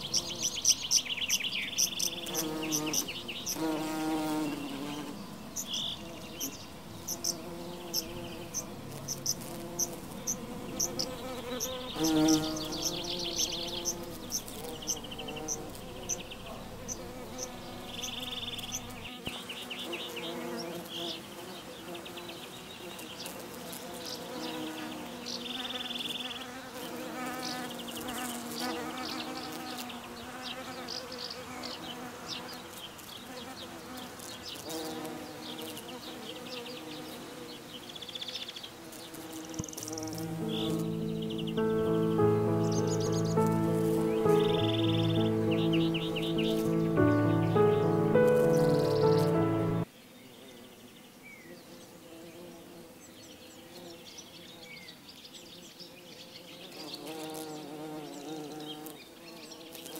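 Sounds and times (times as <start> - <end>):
bees buzzing: 0.0 - 30.9, 38.9 - 49.9.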